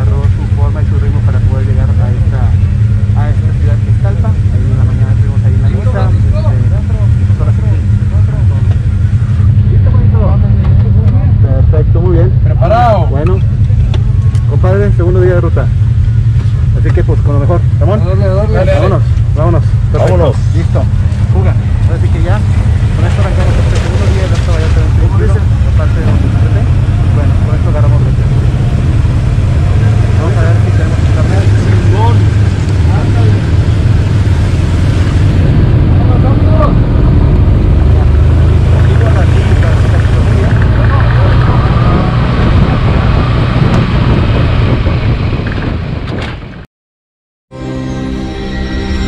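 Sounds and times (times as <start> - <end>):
indistinct voices: 0.0 - 43.8
other vehicles running: 0.0 - 46.6
utility vehicle engine rumbling: 0.0 - 46.7.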